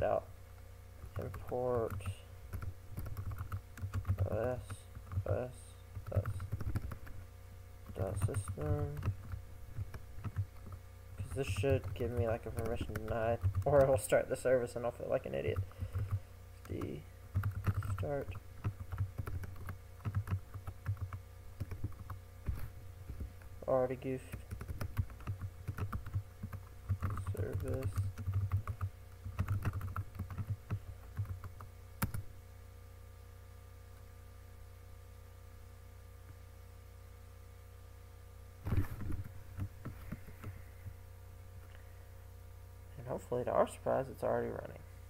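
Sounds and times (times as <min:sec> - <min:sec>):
steady low hum: 0:00.0 - 0:45.0
computer keyboard typing: 0:01.0 - 0:05.3, 0:05.9 - 0:07.1, 0:07.8 - 0:14.1, 0:15.4 - 0:23.3, 0:24.3 - 0:32.3.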